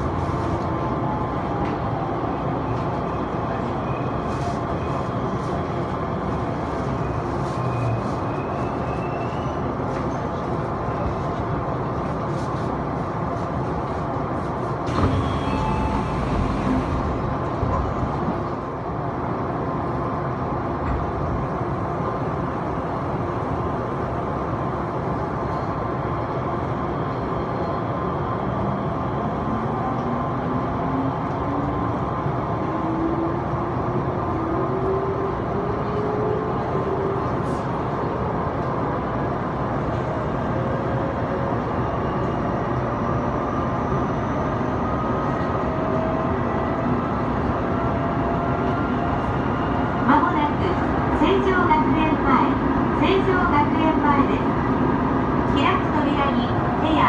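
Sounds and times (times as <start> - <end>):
train running rumble: 1.6 - 25.6.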